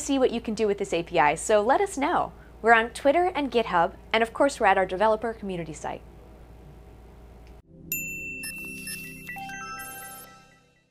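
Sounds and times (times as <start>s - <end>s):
bright high chime: 7.9s - 10.9s.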